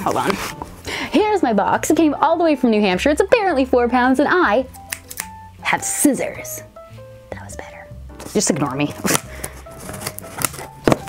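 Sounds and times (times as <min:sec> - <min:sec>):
scissors cutting packing tape: 0:04.9 - 0:05.3, 0:09.0 - 0:11.0.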